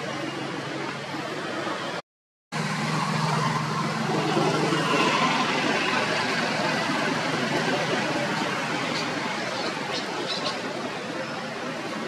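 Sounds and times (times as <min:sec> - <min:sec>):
outdoor background noise: 0:00.0 - 0:12.0
vehicle engine humming: 0:00.0 - 0:12.0.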